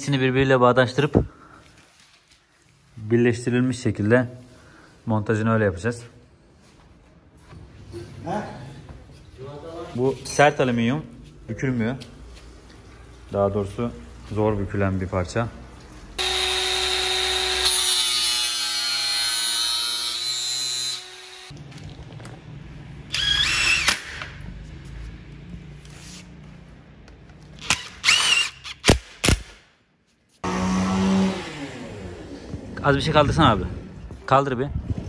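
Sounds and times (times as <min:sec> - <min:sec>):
angle grinder cutting metal: 0:16.2 - 0:21.6.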